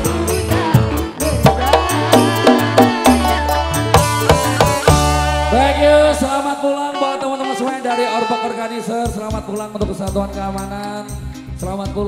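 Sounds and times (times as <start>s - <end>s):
gliding melody line: 1.1s - 8.2s
low bass note: 1.3s - 6.4s
drum hit: 1.4s - 5.3s.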